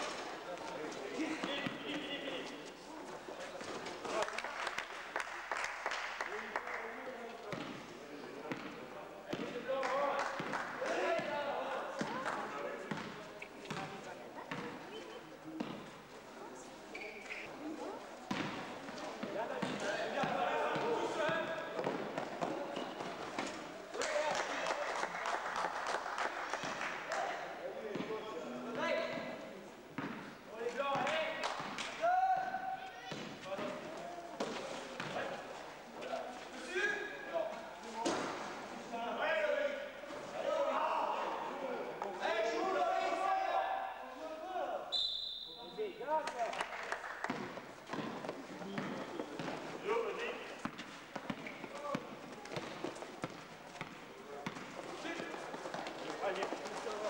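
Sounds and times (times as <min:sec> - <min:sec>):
basketball bouncing on court floor: 0:08.5 - 0:09.6, 0:12.9 - 0:14.8, 0:15.6 - 0:15.8, 0:18.3 - 0:20.9, 0:47.3 - 0:49.7, 0:50.6 - 0:54.7.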